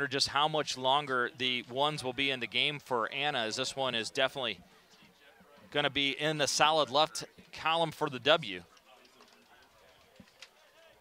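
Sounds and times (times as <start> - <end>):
faint indistinct voices: 0.4 - 11.0.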